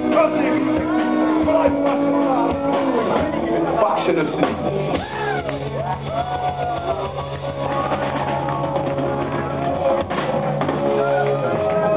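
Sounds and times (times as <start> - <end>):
steady drum hits: 4.4 - 11.9.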